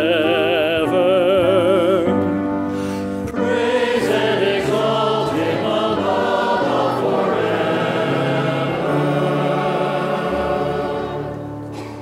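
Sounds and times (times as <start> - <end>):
choir singing slow held notes: 3.2 - 12.0.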